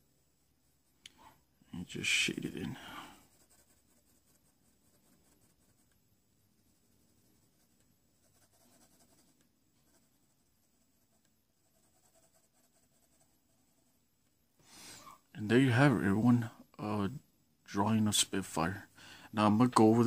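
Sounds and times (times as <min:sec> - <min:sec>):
pencil scratching on paper: 0:03.1 - 0:06.0, 0:06.8 - 0:14.0.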